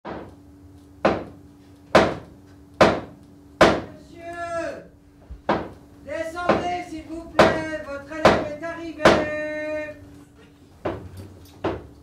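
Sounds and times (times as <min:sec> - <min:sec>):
heavy wooden knocks: 0:05.5 - 0:05.7, 0:06.4 - 0:06.8, 0:07.4 - 0:09.4, 0:10.8 - 0:11.9.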